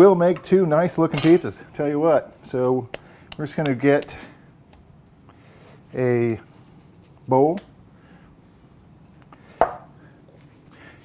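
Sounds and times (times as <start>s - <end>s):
glass bowl knocking on wood: 9.6s - 9.8s.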